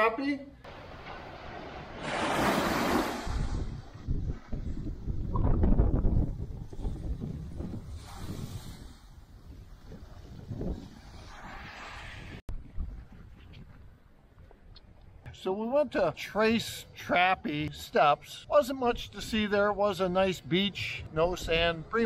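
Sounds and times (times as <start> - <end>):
wind buffeting microphone: 0.7 - 14.5
small waves washing on rocks: 1.2 - 3.7.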